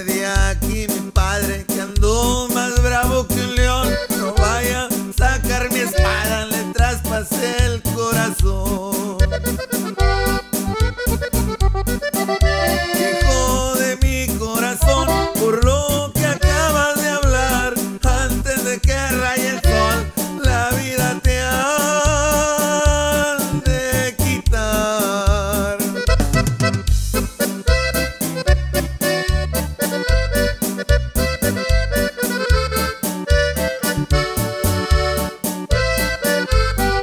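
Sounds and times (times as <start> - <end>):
accordion melodic run: 0.0 - 37.0
steady bass beat: 0.0 - 37.0
strummed chords: 0.0 - 37.0.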